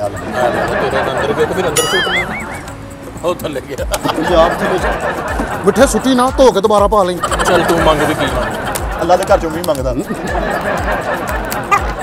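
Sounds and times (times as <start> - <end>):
rapid warbling call: 1.8 - 2.8
music with low beat: 1.8 - 12.0.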